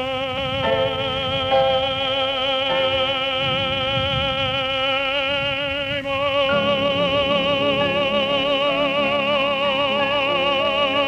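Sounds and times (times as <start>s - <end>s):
operatic tenor singing: 0.0s - 11.0s
soft piano accompaniment: 0.0s - 11.0s.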